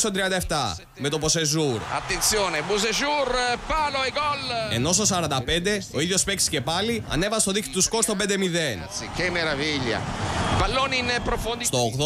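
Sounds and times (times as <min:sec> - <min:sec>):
stadium crowd cheering: 0:01.0 - 0:05.5, 0:08.8 - 0:12.0.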